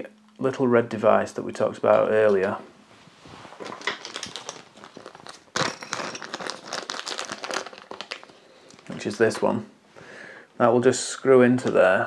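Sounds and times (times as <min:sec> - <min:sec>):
plastic bag crinkling: 0:03.5 - 0:09.6.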